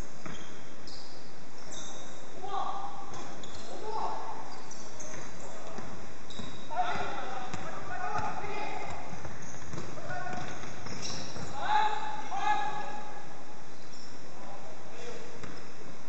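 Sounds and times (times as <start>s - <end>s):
players calling out: 1.7s - 13.4s
basketball dribbling on hardwood: 7.5s - 11.5s.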